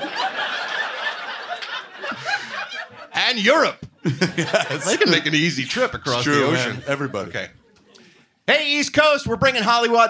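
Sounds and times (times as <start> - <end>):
audience laughing: 0.0 - 3.2, 4.0 - 7.9
man laughing into microphone: 4.0 - 5.4.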